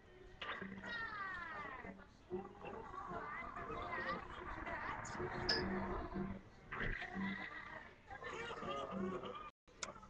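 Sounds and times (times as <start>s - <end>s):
cartoon soundtrack from television: 0.0s - 10.0s.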